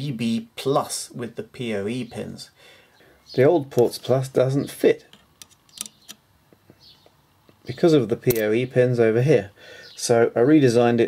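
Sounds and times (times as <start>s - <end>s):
faint plastic and metal clicks: 5.1s - 7.6s.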